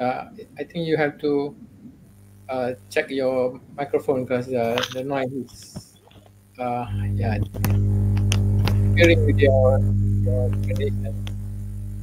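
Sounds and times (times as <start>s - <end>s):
electrical mains hum: 0.0s - 12.0s
person speaking: 2.5s - 6.0s, 6.6s - 7.8s, 8.6s - 11.2s
cable handling clicks: 4.7s - 6.3s, 10.5s - 11.4s.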